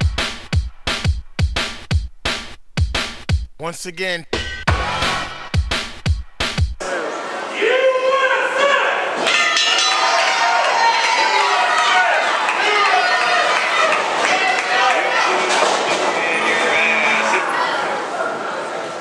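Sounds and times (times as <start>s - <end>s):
voices shouting in echoing hall: 6.8s - 19.0s.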